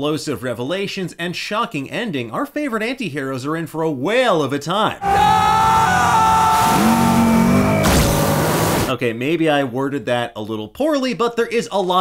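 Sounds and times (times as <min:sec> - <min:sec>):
speedboat engine whining: 0:05.0 - 0:08.9
deeper engine tone: 0:05.1 - 0:08.9.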